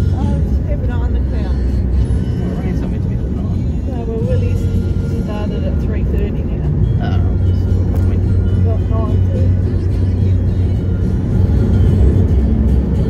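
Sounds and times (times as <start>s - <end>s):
road and engine rumble in car: 0.0s - 13.0s.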